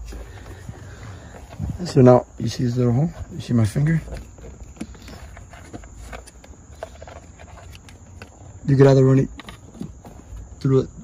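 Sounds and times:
hands handling plastic trim: 0.0s - 10.5s.

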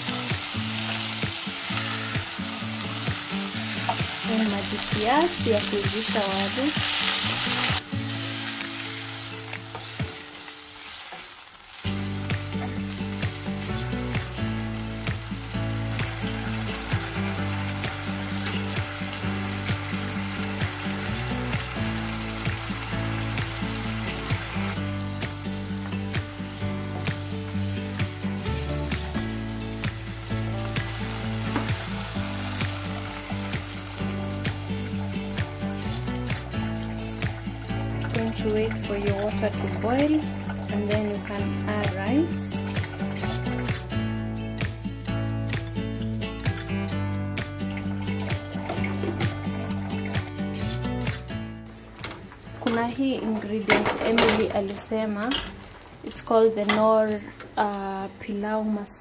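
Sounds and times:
soft background music with bass: 0.0s - 11.0s, 11.8s - 55.7s
water hissing on hot pan: 0.0s - 43.8s
food sizzling in a pot: 0.0s - 57.8s.

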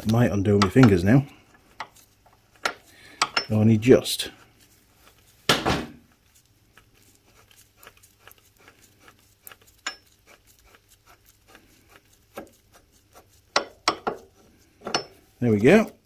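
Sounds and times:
metallic ticks and scrapes of threads: 0.0s - 5.5s, 6.1s - 16.0s
metal clinks: 2.6s - 3.6s, 14.8s - 15.2s.

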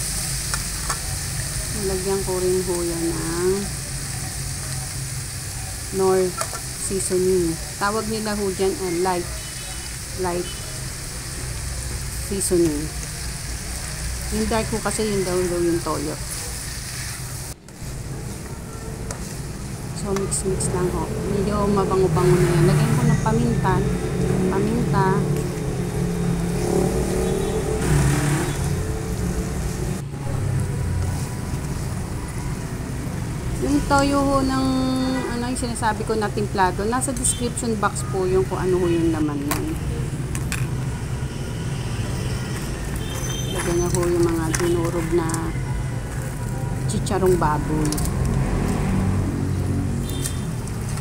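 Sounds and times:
meat frying in a wok: 0.0s - 34.7s, 35.4s - 51.0s.

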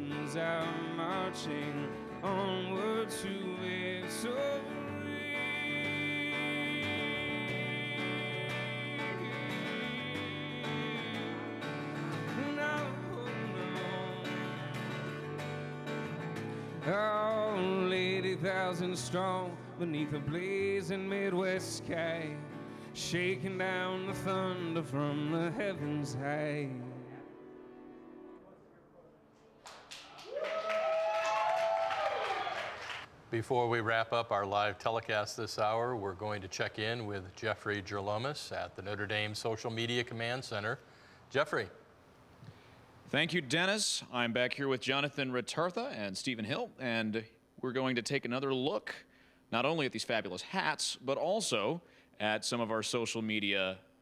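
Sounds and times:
person singing: 0.0s - 15.6s, 16.4s - 27.5s
acoustic guitar strumming: 0.0s - 28.4s
audience applauding: 29.6s - 33.1s
person cheering: 30.1s - 32.8s.

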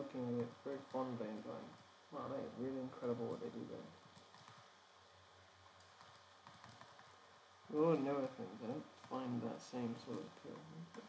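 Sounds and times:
light clicks and taps: 4.1s - 4.7s, 5.6s - 7.2s, 9.9s - 11.0s.

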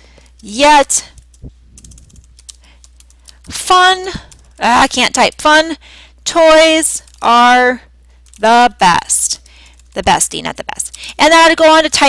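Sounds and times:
computer keyboard typing: 0.2s - 5.6s, 6.4s - 7.4s, 8.2s - 8.5s, 9.2s - 12.0s.

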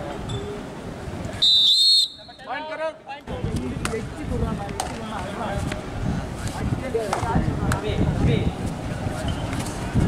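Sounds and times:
crowd voices: 0.0s - 10.0s
referee's whistle blast: 1.4s - 2.5s.

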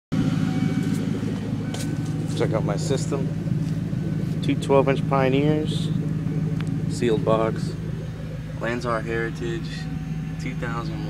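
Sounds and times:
car engine idling: 0.1s - 11.0s.

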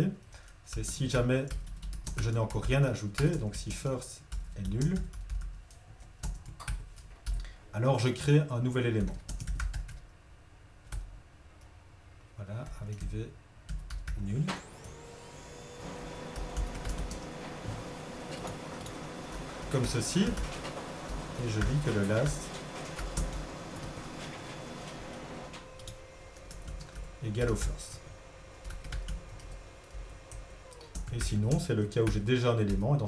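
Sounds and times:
faint steady hum: 0.0s - 33.0s
computer keyboard typing: 0.7s - 7.5s, 9.0s - 10.0s, 12.6s - 13.1s, 13.7s - 14.3s, 16.2s - 17.4s, 18.3s - 25.1s, 25.8s - 28.0s, 28.6s - 33.0s.

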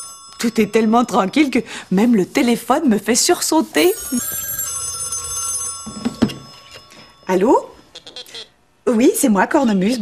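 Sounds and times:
telephone bell ringing: 0.0s - 2.1s, 3.8s - 8.2s.

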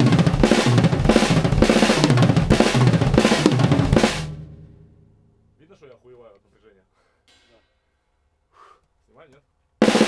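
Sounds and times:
short breath out: 8.5s - 9.0s.

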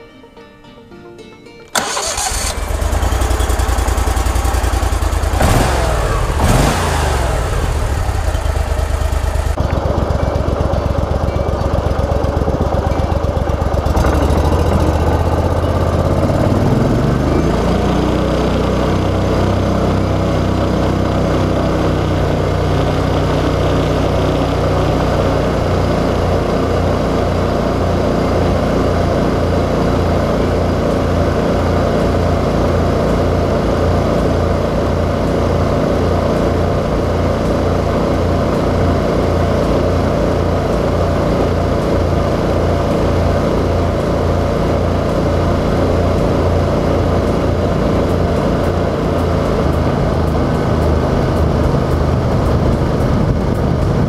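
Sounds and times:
boat motor engine drone: 1.8s - 54.0s.

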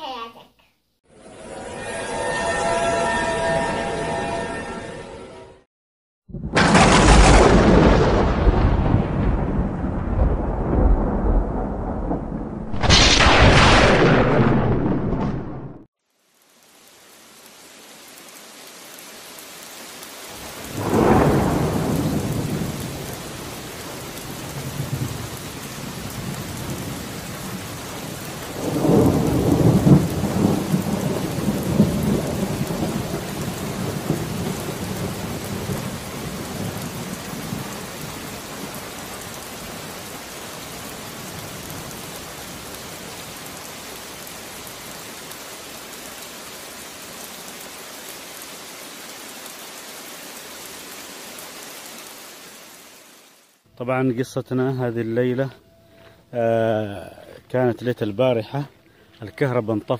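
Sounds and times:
thunder rumbling: 6.3s - 15.9s, 20.5s - 39.9s
steady rain: 6.4s - 59.9s.

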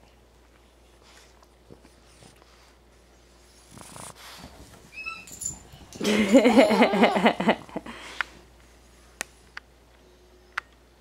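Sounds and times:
dog snuffling and snorting: 3.5s - 4.7s.

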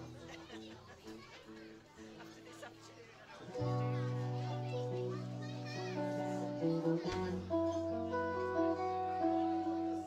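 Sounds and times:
rock band guitars and bass: 0.0s - 0.5s, 3.5s - 10.0s.

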